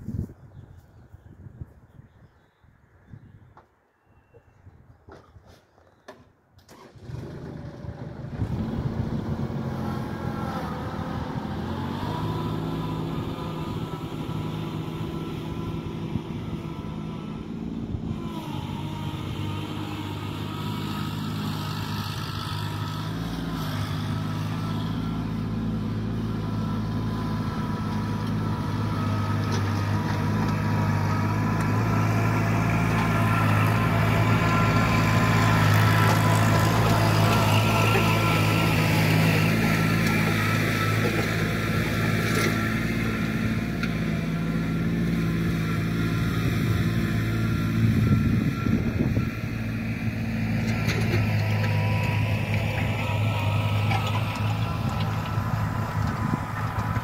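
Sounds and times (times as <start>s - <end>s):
tractor diesel engine under load: 6.6s - 57.0s.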